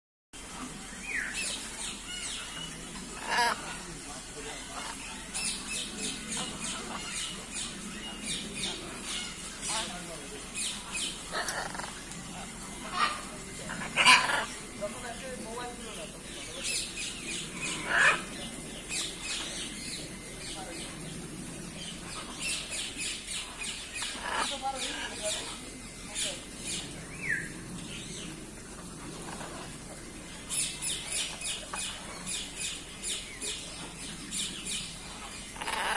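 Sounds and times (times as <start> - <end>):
birds chirping: 0.4 - 35.9
murmur of voices: 0.5 - 35.9
parrots squawking: 2.1 - 3.8, 4.5 - 7.8, 10.6 - 15.2, 16.7 - 19.4, 22.2 - 25.6, 35.6 - 35.9
bird squawk: 12.8 - 14.7, 17.5 - 18.4, 35.6 - 35.9.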